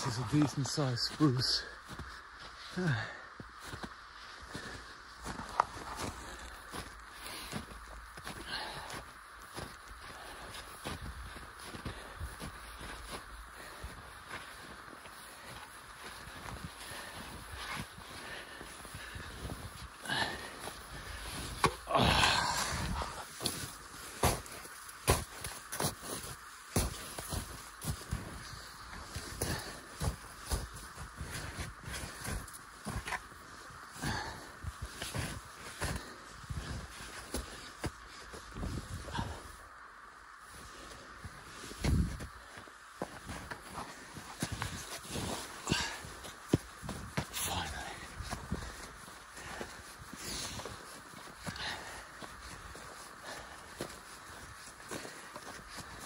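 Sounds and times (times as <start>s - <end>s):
footsteps crunching through snow: 0.0s - 39.6s, 40.2s - 56.0s
person breathing hard: 1.7s - 56.0s.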